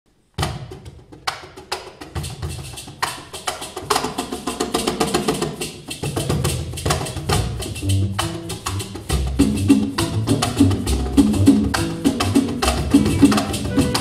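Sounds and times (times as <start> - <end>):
hand percussion strikes: 0.5 - 14.0
low bass notes: 7.7 - 12.1, 12.8 - 14.0
keyboard melody: 13.0 - 14.0.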